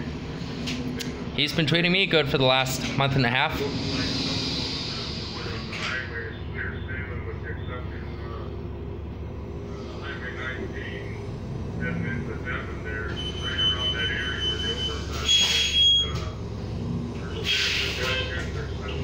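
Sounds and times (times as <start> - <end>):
bus engine idling: 0.0 - 19.0
voices talking: 0.8 - 19.0
loud burst of hiss: 3.6 - 5.8
high electronic beep tone: 13.1 - 16.2.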